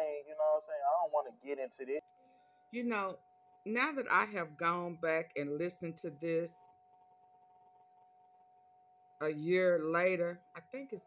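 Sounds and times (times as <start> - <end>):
thin steady hum: 0.0 - 11.0.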